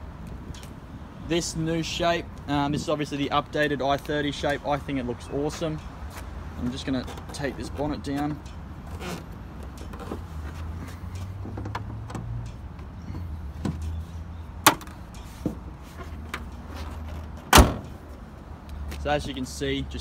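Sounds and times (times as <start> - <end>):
car bonnet slamming shut: 14.6 - 15.0, 17.4 - 18.0
car bonnet latch click: 17.5 - 18.0.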